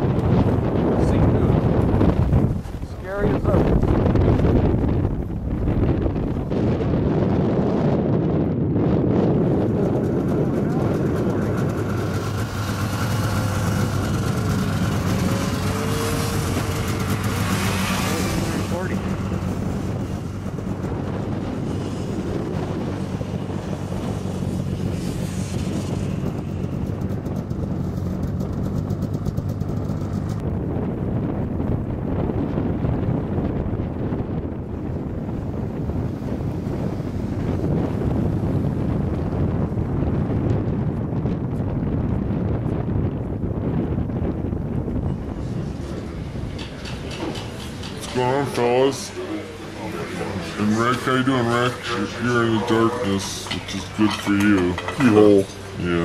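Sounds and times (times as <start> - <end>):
wind buffeting microphone: 0.0 - 56.0
snowmobile engines idling: 9.3 - 30.4, 45.2 - 56.0.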